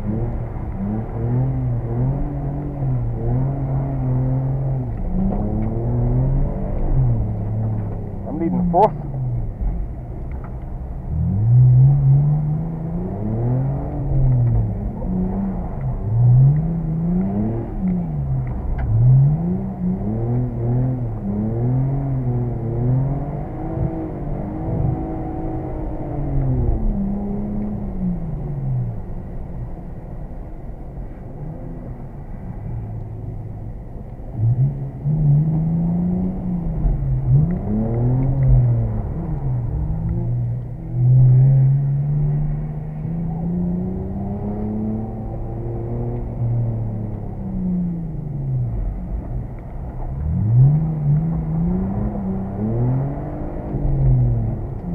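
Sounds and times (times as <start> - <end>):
car engine revving inside cabin: 0.0 - 54.9.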